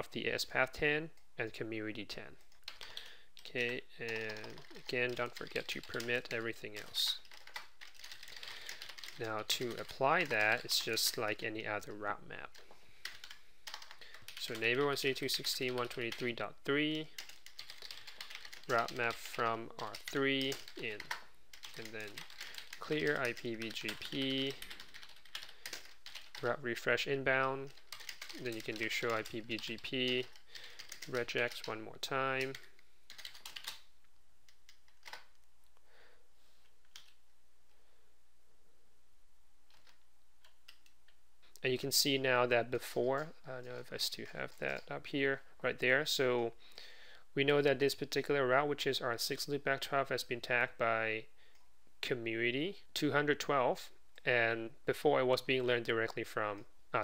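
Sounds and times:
computer keyboard typing: 2.5s - 16.4s, 17.0s - 26.5s, 27.6s - 33.9s, 34.5s - 35.4s.

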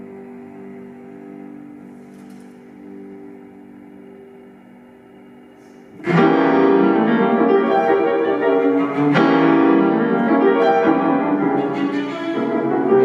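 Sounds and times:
cello: 0.0s - 13.0s
piano: 0.0s - 13.0s.

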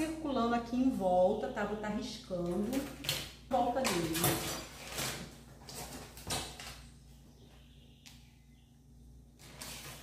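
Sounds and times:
paper rustling and scraping: 9.4s - 10.0s.

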